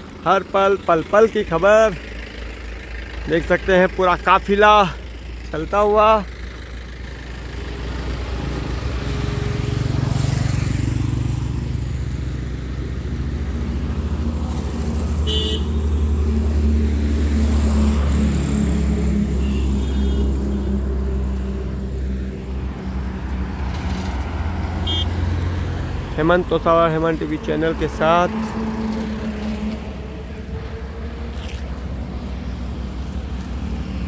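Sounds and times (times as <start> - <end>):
car engines and road rumble: 0.0 - 34.0
car horn toot: 15.2 - 16.0, 19.4 - 20.6, 24.8 - 25.2.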